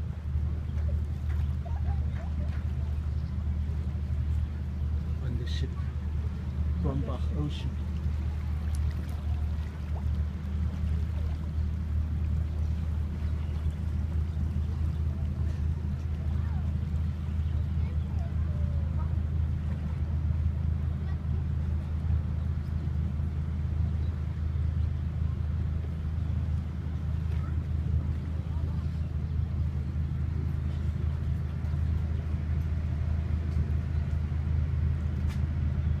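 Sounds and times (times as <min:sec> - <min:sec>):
ship engine droning: 0:00.0 - 0:36.0.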